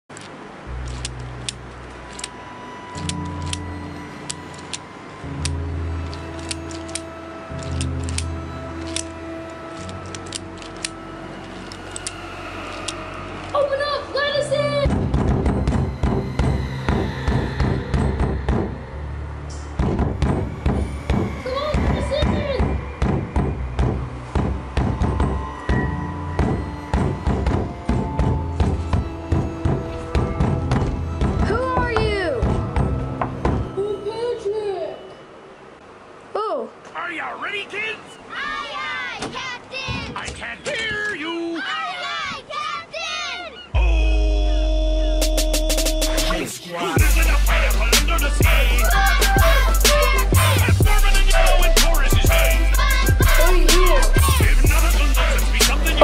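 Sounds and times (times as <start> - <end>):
sustained low notes: 0.8 - 34.3
voice-like passages: 20.9 - 22.9
steady driving beat: 47.0 - 56.0.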